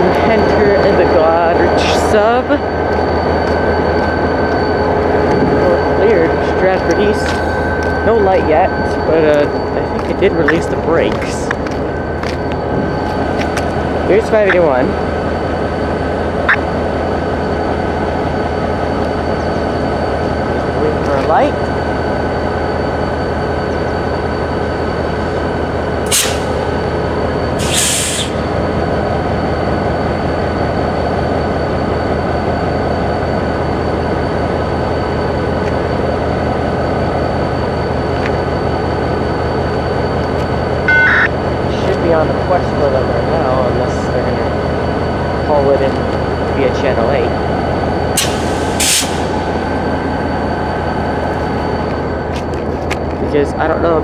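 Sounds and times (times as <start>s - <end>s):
diesel locomotives idling: 0.0s - 54.0s
short hisses: 26.1s - 26.6s, 27.6s - 28.4s.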